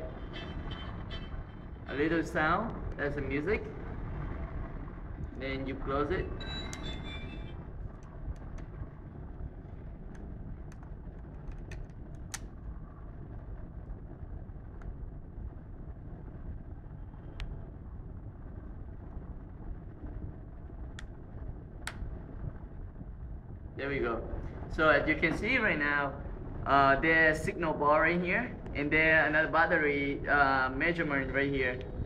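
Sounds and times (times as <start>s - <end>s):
low background rumble: 0.0s - 32.0s
plastic phone case clicking: 10.7s - 12.4s.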